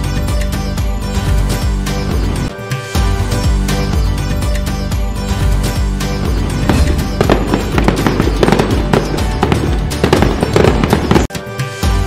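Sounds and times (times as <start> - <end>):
background music: 0.0 - 12.0
firecrackers crackling and popping: 6.6 - 11.3.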